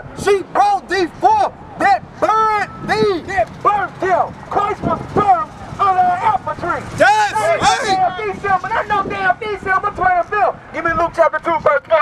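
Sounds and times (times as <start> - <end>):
man preaching through megaphone: 0.0 - 12.0.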